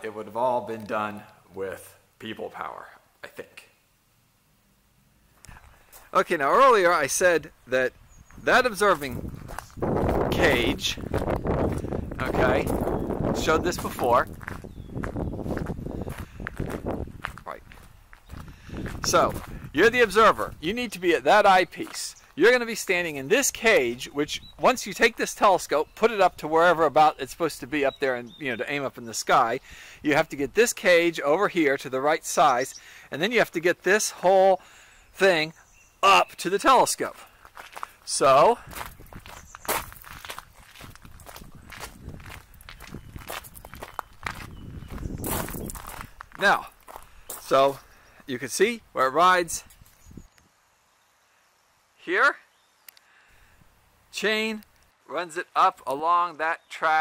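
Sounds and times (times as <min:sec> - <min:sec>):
footsteps on gravel: 0:05.3 - 0:06.9, 0:08.2 - 0:25.6, 0:36.9 - 0:47.9.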